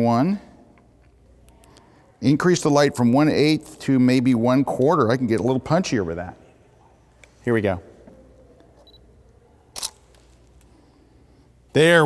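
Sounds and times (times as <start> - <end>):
camera shutter click: 9.8 - 10.1.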